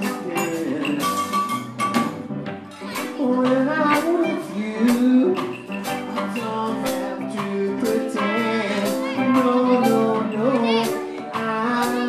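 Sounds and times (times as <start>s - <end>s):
person singing through pa: 0.0s - 1.6s, 2.7s - 12.0s
drum kit beat: 0.0s - 12.0s
electric bass: 0.0s - 12.0s.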